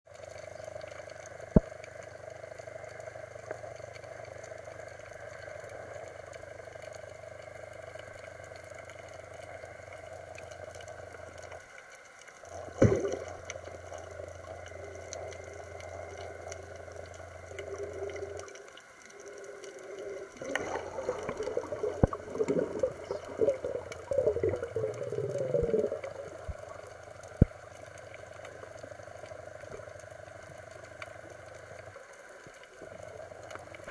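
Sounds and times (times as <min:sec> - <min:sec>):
underwater water noise: 0:00.1 - 0:33.9
low hum: 0:12.4 - 0:33.9.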